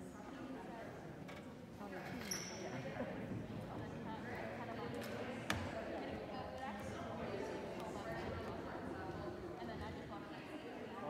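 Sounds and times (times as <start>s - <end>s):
murmur of chatter: 0.0s - 11.0s.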